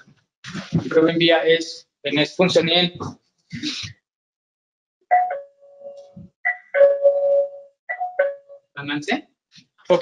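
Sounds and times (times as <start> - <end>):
two-note ding-dong doorbell chime: 5.1 - 8.6.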